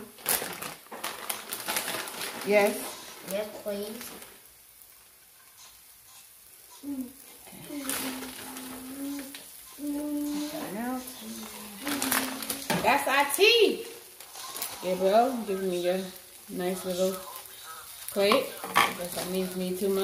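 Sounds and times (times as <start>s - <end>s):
eggs and sausage frying: 0.0s - 20.0s
person humming: 6.8s - 12.8s.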